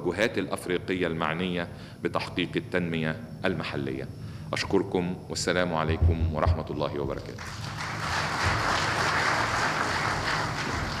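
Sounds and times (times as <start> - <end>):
audience applauding: 7.4 - 11.0.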